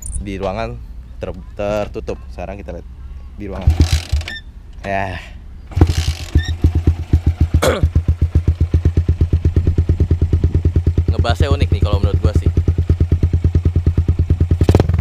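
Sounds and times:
motorcycle engine idling: 0:03.5 - 0:04.5, 0:05.6 - 0:15.0
motorcycle engine kick-started: 0:03.6 - 0:04.4, 0:05.7 - 0:09.1, 0:14.5 - 0:15.0.

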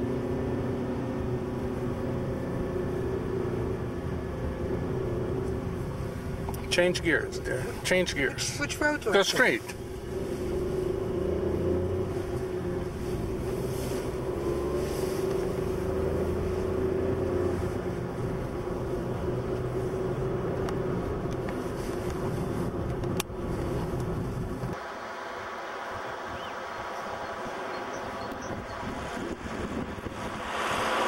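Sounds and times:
car engine hum: 0:00.0 - 0:31.0
road noise: 0:00.0 - 0:31.0
wind noise: 0:26.0 - 0:31.0.

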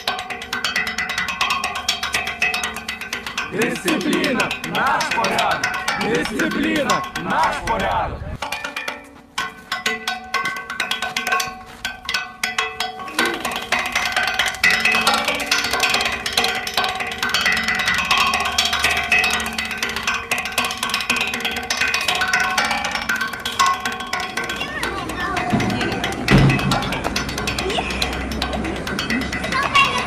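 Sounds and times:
music with clicking percussion: 0:00.0 - 0:30.0
voices: 0:03.4 - 0:08.4, 0:13.0 - 0:16.4, 0:24.1 - 0:30.0.

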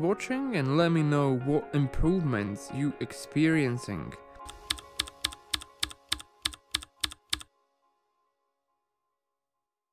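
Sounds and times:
faint music: 0:00.0 - 0:09.2
keystroke clicks: 0:04.4 - 0:07.5.

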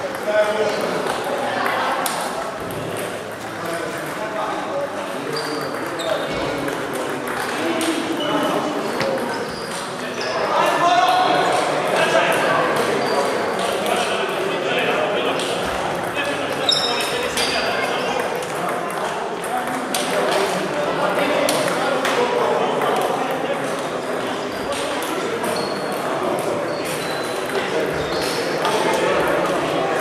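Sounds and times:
table tennis balls clicking: 0:05.4 - 0:08.2.

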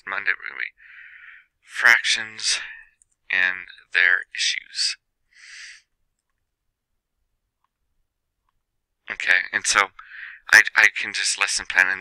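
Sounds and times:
breathy hiss: 0:05.4 - 0:05.9.

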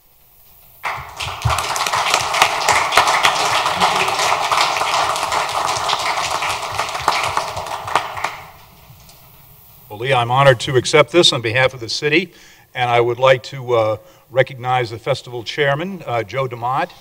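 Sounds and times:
audience applauding: 0:00.8 - 0:08.8.

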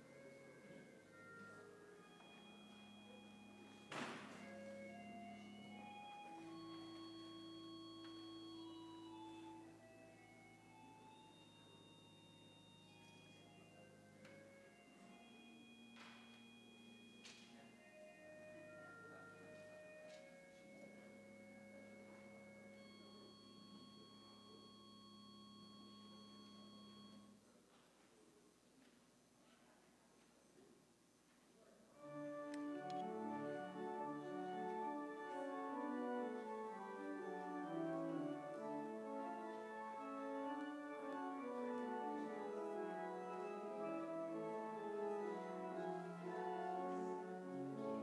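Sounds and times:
slow organ music: 0:00.0 - 0:27.4, 0:32.0 - 0:48.0.

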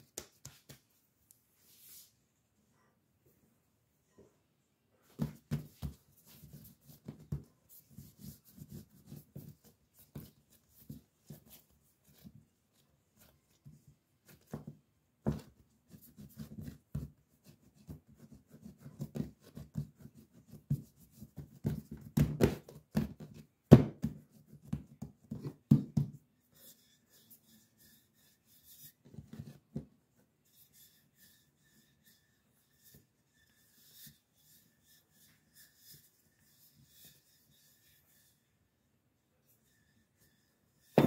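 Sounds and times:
hands kneading dough: 0:00.0 - 0:02.2, 0:05.0 - 0:31.0.

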